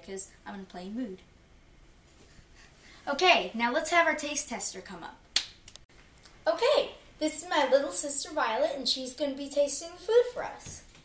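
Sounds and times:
girl speaking: 3.1 - 5.2, 6.4 - 10.9.

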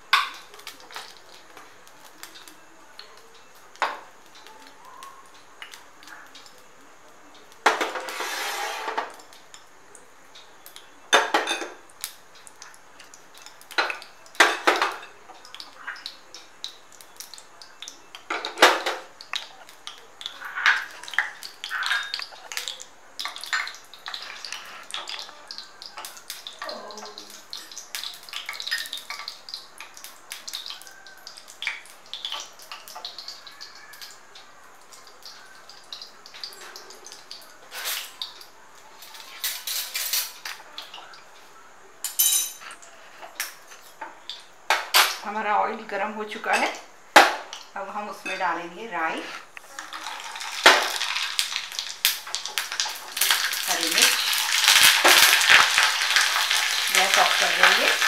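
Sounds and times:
dishes and utensils clinking: 7.6 - 9.6, 11.1 - 11.9, 13.4 - 16.0, 18.2 - 19.6, 20.5 - 25.2, 37.7 - 38.2, 39.0 - 41.1, 42.0 - 45.3.

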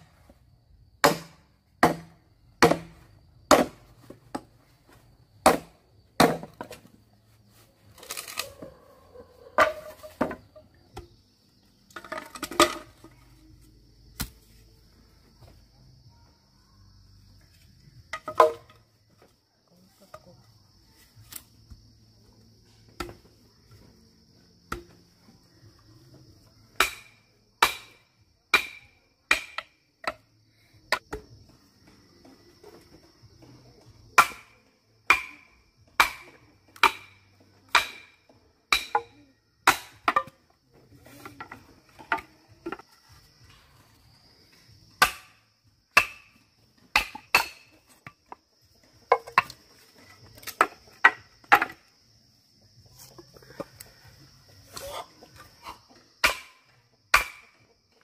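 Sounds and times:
knife chopping bamboo: 1.0 - 3.8, 5.4 - 6.8, 14.2 - 14.4, 34.2 - 35.4, 36.0 - 37.1, 37.7 - 40.3, 46.0 - 46.3, 56.2 - 57.6.

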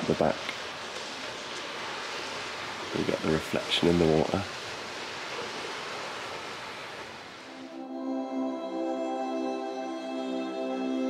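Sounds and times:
moving water: 0.0 - 8.0
soft background music: 7.6 - 11.0.

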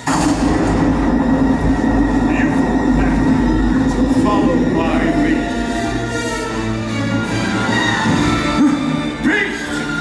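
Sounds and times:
loud low rumble over sound system: 0.0 - 6.9.

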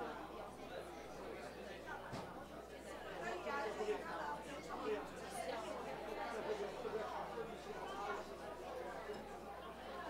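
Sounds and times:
indistinct background chatter: 0.0 - 10.0.

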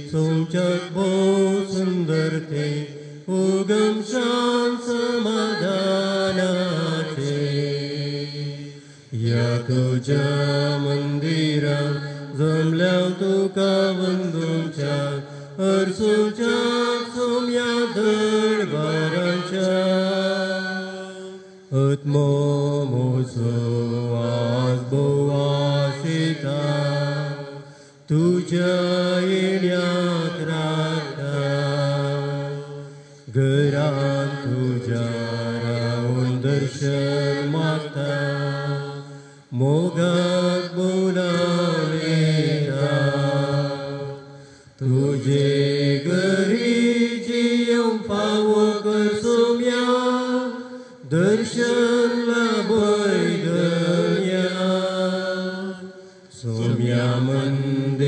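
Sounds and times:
priest chanting a prayer: 0.0 - 58.0.

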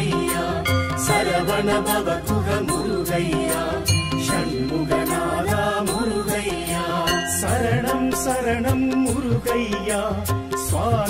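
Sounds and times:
devotional song melody: 0.0 - 11.0
percussion strikes: 0.0 - 11.0.

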